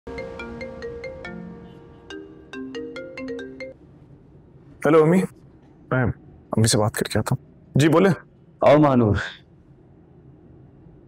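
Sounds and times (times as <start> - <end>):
mobile phone ringtone: 0.1 - 3.8.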